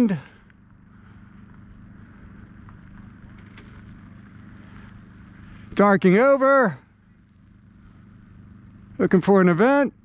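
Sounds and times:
engine idling hum: 0.0 - 10.0
faint ticks: 0.4 - 5.8.

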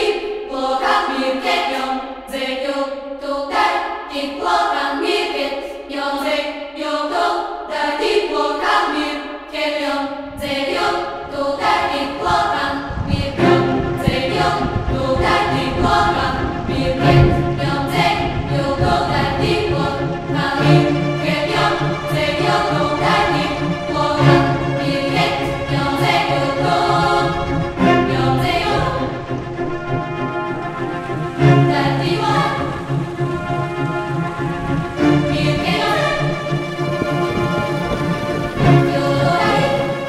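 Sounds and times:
choir singing sustained chords: 0.0 - 40.0
deep low musical layer: 12.4 - 40.0.

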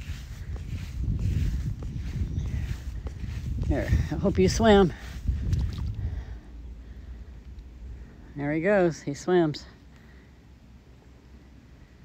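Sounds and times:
wind rumbling on microphone: 0.0 - 9.9.

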